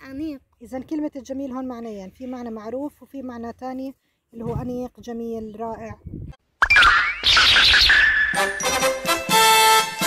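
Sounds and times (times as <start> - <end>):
cartoon rising glide: 6.6 - 8.6.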